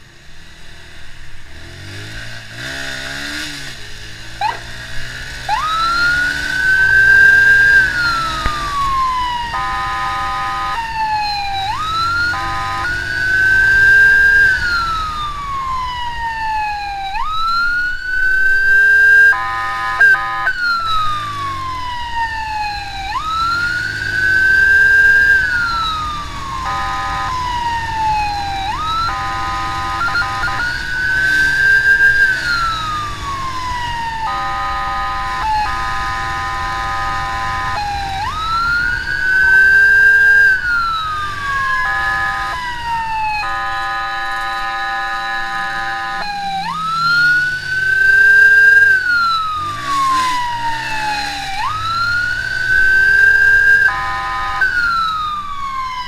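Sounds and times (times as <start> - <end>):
electronic siren wailing: 3.4 - 56.0
horn blasts: 9.5 - 10.9, 12.1 - 14.8, 18.5 - 20.7, 24.0 - 25.7, 26.5 - 27.7, 28.8 - 32.7, 34.1 - 38.3, 39.2 - 40.7, 41.7 - 42.7, 43.4 - 50.4, 52.6 - 54.9.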